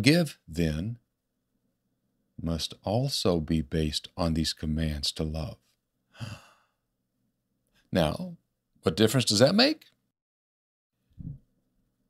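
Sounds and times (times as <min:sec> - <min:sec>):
man sighing: 0:06.1 - 0:06.8.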